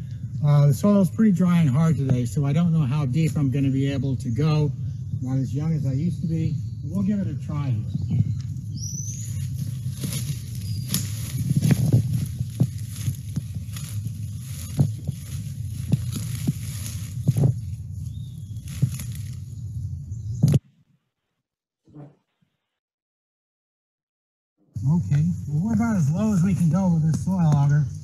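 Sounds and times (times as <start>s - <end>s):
low rumble on microphone: 0.0s - 20.7s, 24.7s - 28.0s
rustling through undergrowth: 8.3s - 20.6s.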